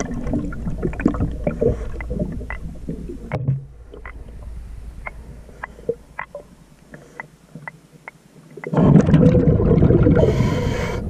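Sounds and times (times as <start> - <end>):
low rumble: 0.0 - 6.8
exhaust bubbles: 8.7 - 10.8
underwater regulator breathing: 10.2 - 11.0.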